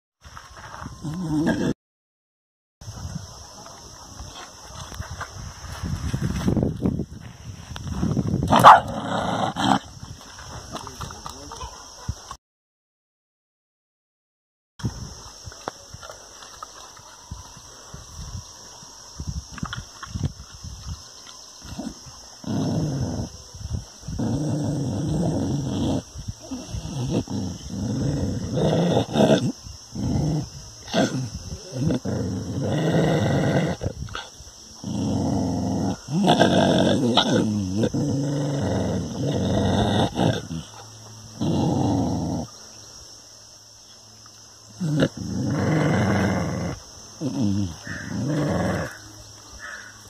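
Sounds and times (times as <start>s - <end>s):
dog growling: 1.0s - 1.8s, 8.5s - 9.9s, 21.7s - 23.4s, 24.0s - 42.5s, 44.8s - 49.1s.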